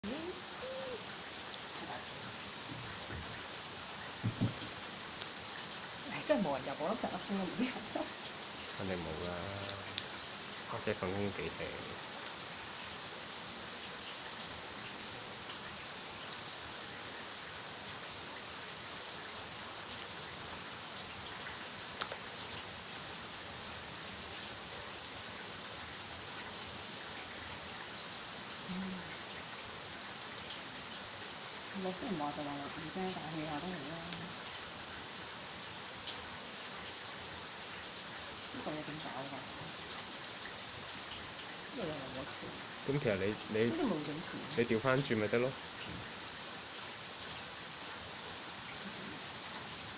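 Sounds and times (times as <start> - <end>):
louder raindrops: 0.0 - 49.9
rain on foliage and stone: 0.0 - 49.9.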